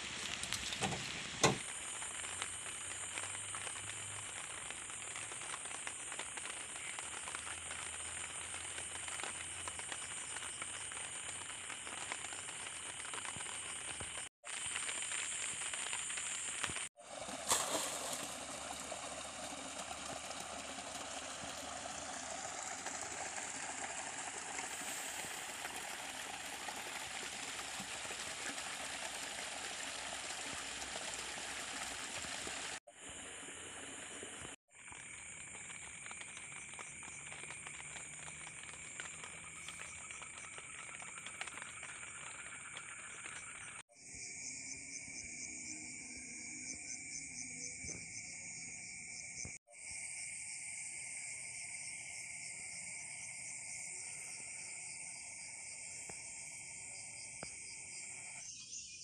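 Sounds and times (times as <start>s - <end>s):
rain pattering on plastic tarp: 0.0s - 32.8s, 34.3s - 43.8s.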